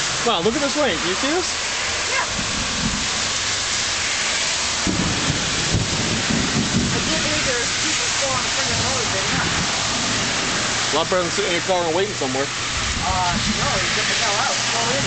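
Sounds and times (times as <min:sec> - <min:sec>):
heavy rain downpour: 0:00.0 - 0:15.0
thunder rumbling: 0:00.0 - 0:15.0.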